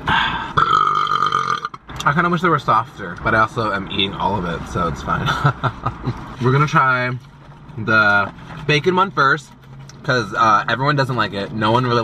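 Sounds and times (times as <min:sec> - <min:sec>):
man burping loudly: 0:00.6 - 0:01.8.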